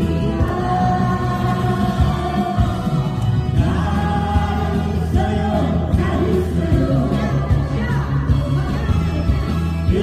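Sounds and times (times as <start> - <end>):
group singing into microphones: 0.0 - 9.0.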